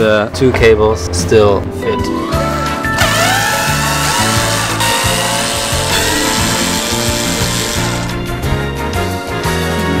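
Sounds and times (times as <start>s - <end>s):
background music with steady beat: 0.4s - 10.0s
cordless drill motor: 3.0s - 8.2s.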